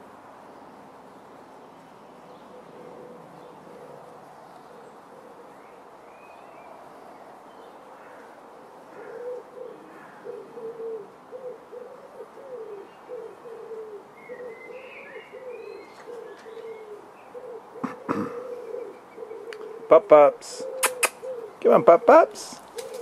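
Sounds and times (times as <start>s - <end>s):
dove cooing: 2.3s - 7.0s, 7.8s - 23.0s
small bird chirping: 20.6s - 21.6s.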